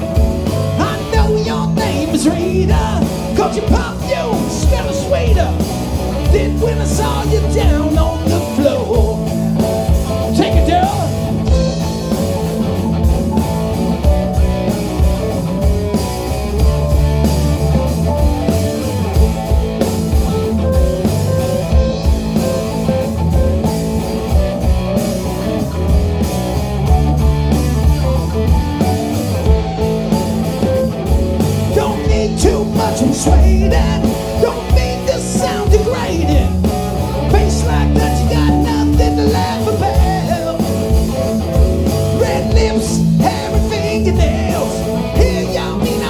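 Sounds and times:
bass guitar: 0:00.0 - 0:46.0
drums: 0:00.0 - 0:46.0
electric guitar: 0:00.0 - 0:46.0
keyboard: 0:00.0 - 0:46.0.

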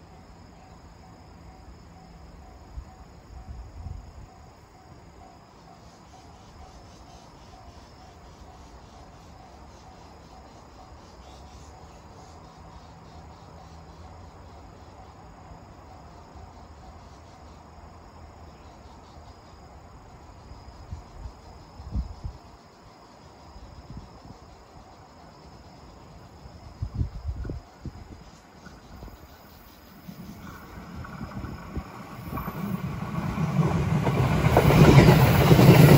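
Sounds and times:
crickets chirping: 0:00.0 - 0:35.9.

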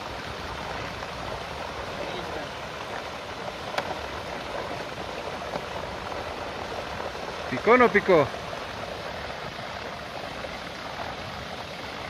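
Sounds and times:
water gushing into pond: 0:00.0 - 0:12.0.

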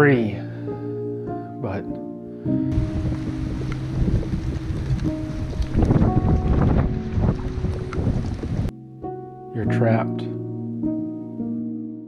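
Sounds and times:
gentle background music: 0:00.0 - 0:12.0
wind buffeting microphone: 0:02.7 - 0:08.7
choppy lake water: 0:02.8 - 0:08.7.

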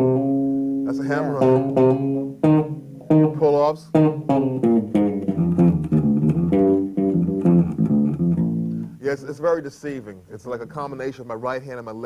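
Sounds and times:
electric bass guitar fast notes: 0:00.0 - 0:09.0.

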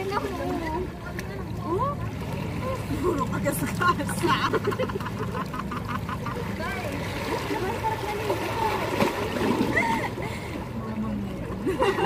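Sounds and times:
seawater splashing by hands: 0:00.0 - 0:10.5
voices: 0:00.0 - 0:12.0.

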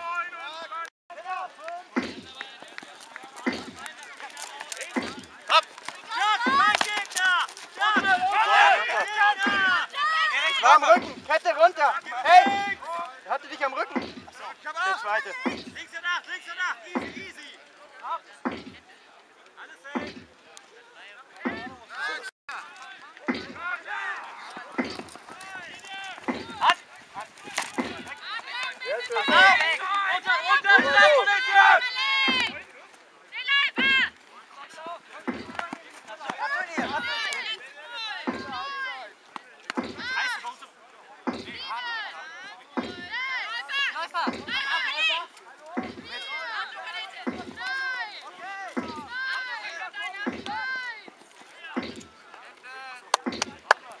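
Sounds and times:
voices shouting excitedly: 0:00.0 - 0:18.8, 0:19.6 - 0:54.0
padded weapons cracking: 0:02.0 - 0:09.7, 0:24.2 - 0:29.8
low drum beats: 0:47.3 - 0:47.6.

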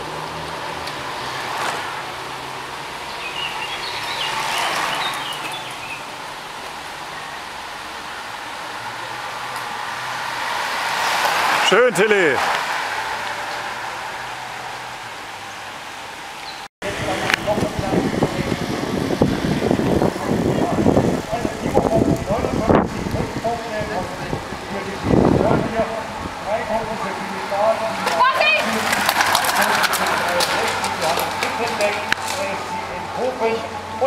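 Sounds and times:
spectators' voices: 0:26.9 - 0:33.9.

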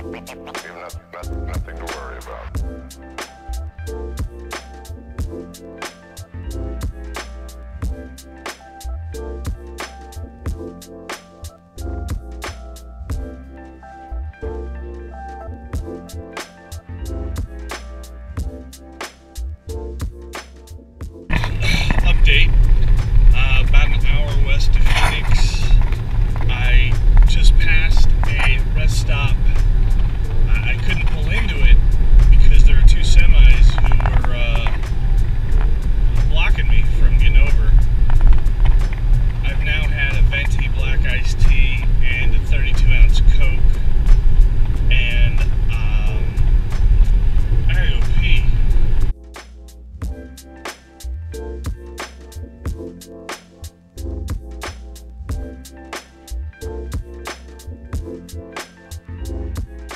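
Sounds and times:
man talking: 0:00.0 - 0:02.6, 0:21.3 - 0:22.6, 0:23.3 - 0:25.8, 0:26.4 - 0:29.6, 0:30.5 - 0:34.8, 0:36.2 - 0:37.8, 0:39.4 - 0:43.7, 0:44.9 - 0:46.4, 0:47.6 - 0:48.6
road and wind noise in car: 0:21.3 - 0:49.1.

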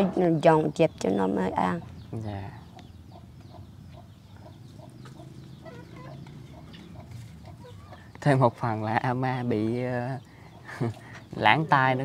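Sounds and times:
chicken clucking: 0:02.6 - 0:08.2.

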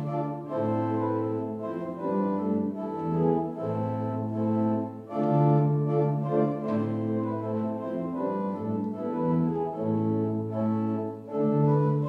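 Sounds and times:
organ playing sustained chords: 0:00.0 - 0:12.0.

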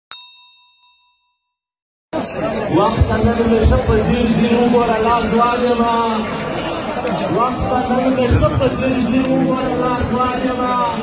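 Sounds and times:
bright metallic bell ding: 0:00.1 - 0:01.5.

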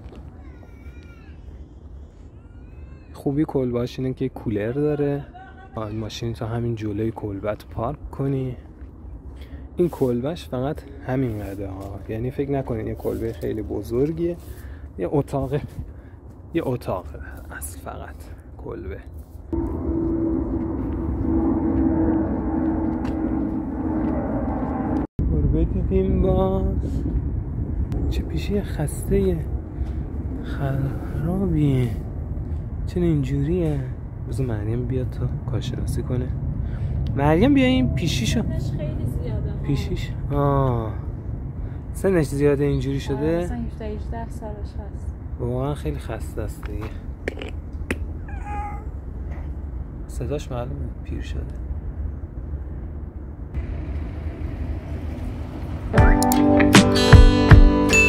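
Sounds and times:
old cat meowing: 0:48.2 - 0:49.1.

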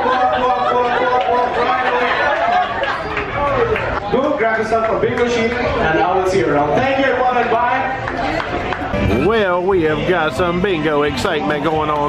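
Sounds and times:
audience chattering: 0:00.0 - 0:12.0
man talking into a microphone: 0:09.1 - 0:12.0.

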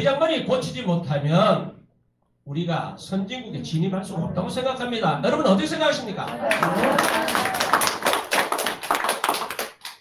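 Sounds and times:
people clapping: 0:06.2 - 0:10.0.

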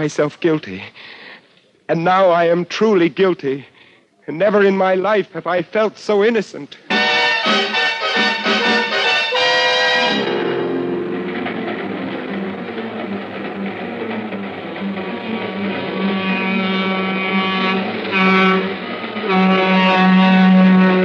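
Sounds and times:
train whistle blowing: 0:06.9 - 0:11.9, 0:15.4 - 0:21.0
train rumbling: 0:07.0 - 0:21.0.

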